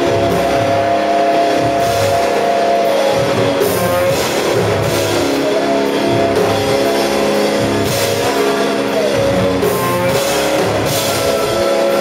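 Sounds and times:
drum kit with cymbals: 0.0 - 12.0
electric guitars sustained notes: 0.0 - 12.0.

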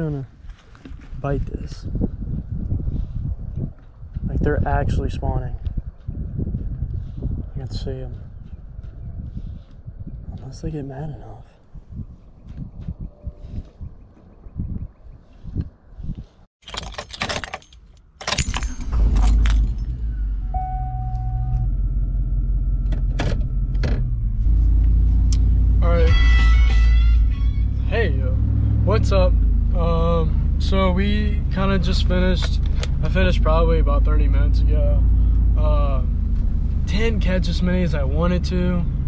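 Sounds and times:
keys jangling: 16.6 - 20.0
truck engine starting and idling: 18.2 - 39.0.

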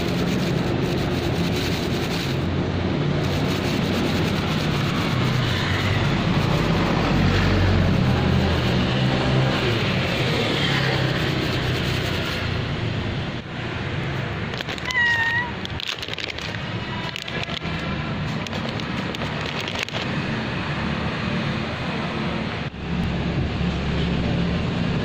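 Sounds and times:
street traffic noise: 0.0 - 25.0
cat meowing: 14.8 - 15.6.

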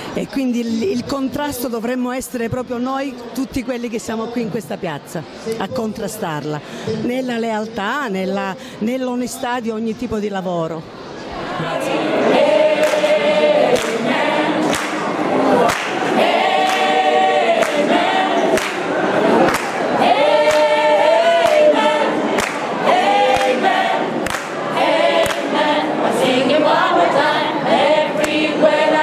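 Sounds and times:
mixed choir singing in harmony: 11.2 - 29.0
hand claps: 12.8 - 16.9, 17.6 - 20.8, 21.4 - 21.8, 22.4 - 22.7, 23.3 - 24.6, 25.2 - 25.6.

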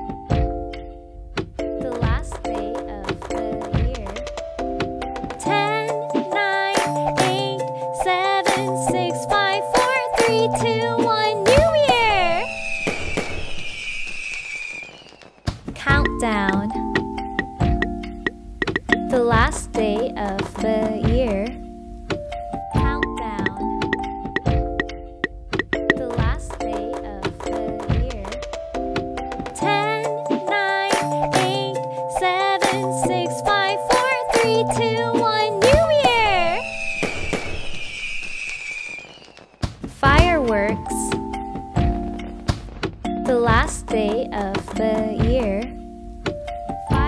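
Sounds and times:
steady high tone: 11.5 - 15.3, 35.7 - 39.5
firework whistle sinking in pitch: 11.8 - 15.5, 36.5 - 39.6
firework crackling: 12.4 - 15.8, 36.6 - 40.0
firework bangs: 12.5 - 15.8, 36.6 - 40.0.

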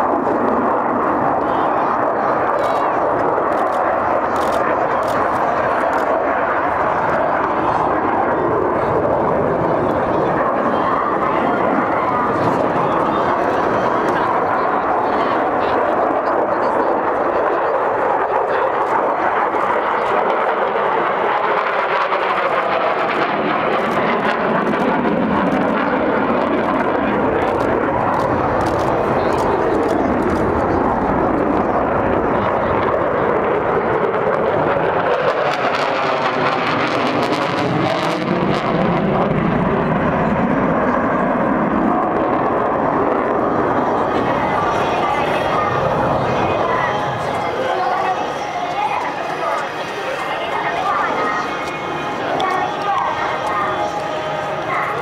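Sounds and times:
jet aircraft flying over: 0.0 - 55.0.

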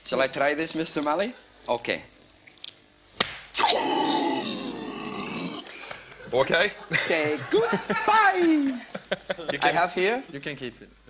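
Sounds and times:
vocal groan falling in pitch: 3.6 - 5.7.

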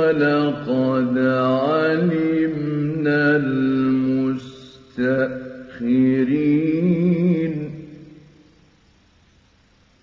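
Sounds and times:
man reciting in melodic chant: 0.0 - 8.2.

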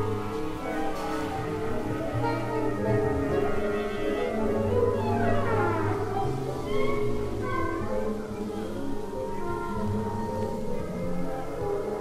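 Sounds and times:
low string tones: 0.0 - 12.0
saxophone gliding notes: 0.0 - 12.0.

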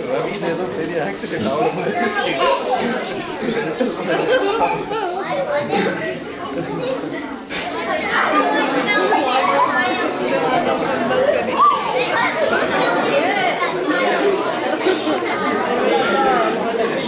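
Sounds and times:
crowd of voices chattering: 0.0 - 17.0.

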